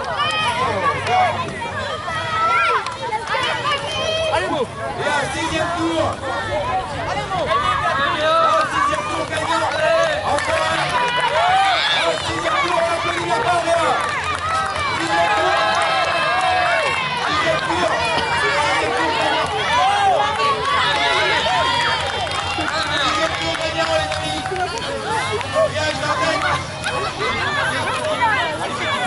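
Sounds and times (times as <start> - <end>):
spectators shouting: 0.0 - 29.0.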